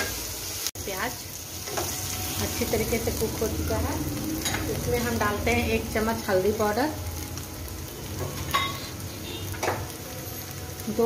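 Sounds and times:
onions sizzling in oil: 0.0s - 11.0s.

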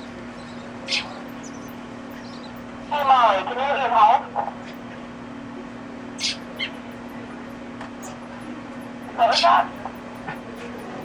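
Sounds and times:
steady low hum: 0.0s - 11.0s
baby bat squeaks: 0.4s - 2.6s, 6.2s - 6.8s.

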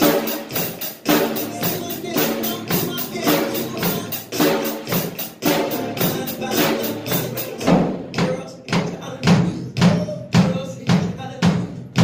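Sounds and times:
drum kit beat with cymbals: 0.0s - 12.0s.

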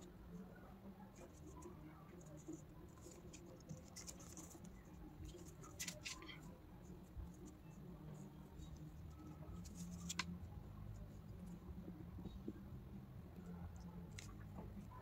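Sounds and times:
faint scratches: 0.0s - 12.6s
low steady hum: 0.0s - 15.0s
fingertips smoothing paper: 1.2s - 6.4s.

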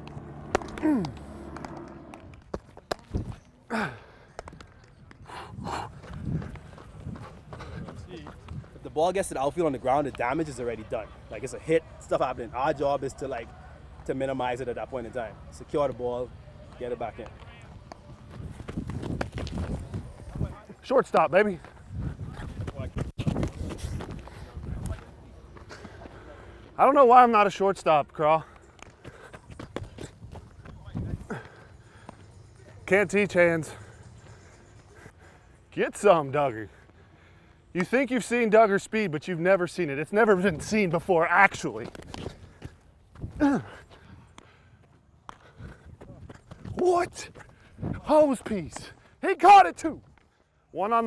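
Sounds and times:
person breathing: 36.7s - 37.7s.

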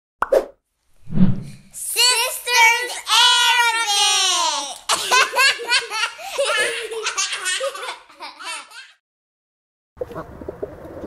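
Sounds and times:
young child's high voice: 1.8s - 4.9s.

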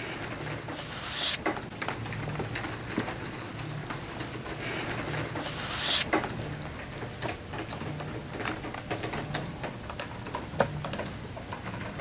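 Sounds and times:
laptop keyboard typing: 0.0s - 12.0s
booklet page turning: 0.7s - 1.4s, 5.4s - 6.1s.

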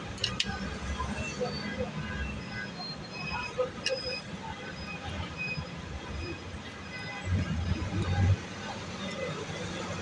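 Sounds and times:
traffic rumble: 0.0s - 10.0s.

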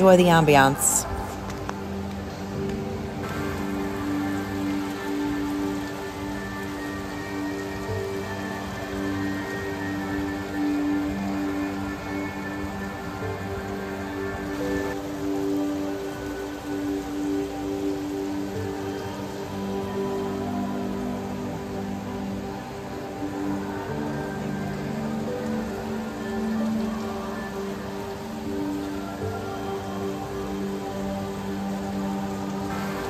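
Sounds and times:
music with sustained chords: 0.0s - 33.0s.

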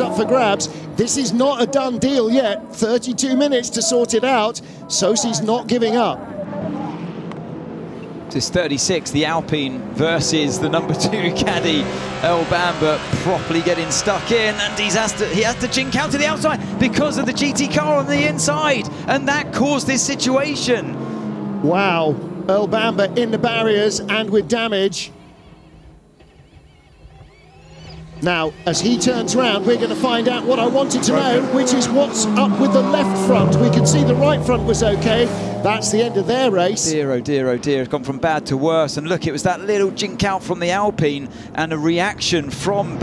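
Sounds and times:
race car engines running: 0.0s - 43.0s.

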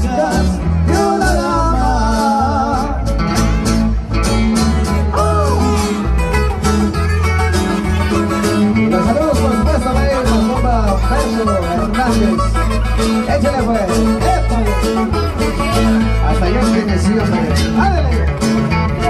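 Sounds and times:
guitar: 0.0s - 19.0s
heavy bass line: 0.0s - 19.0s
live band music through speakers: 0.0s - 19.0s.

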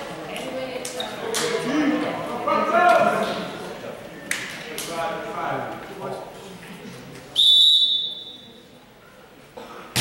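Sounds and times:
referee's whistle blast: 7.4s - 8.5s.

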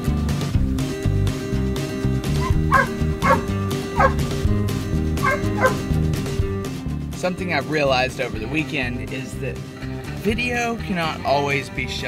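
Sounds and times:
background music with steady beat: 0.0s - 12.0s
dog yipping: 2.4s - 4.2s, 5.2s - 5.8s.

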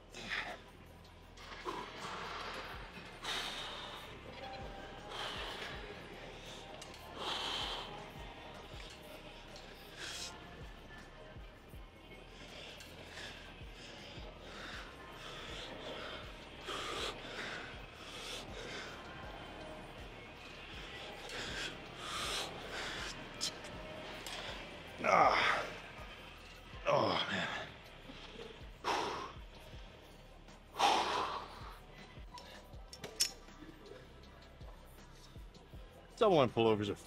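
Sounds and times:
background music: 0.0s - 37.0s
man breathing forcefully: 1.4s - 10.8s, 12.3s - 19.4s, 20.7s - 24.6s.

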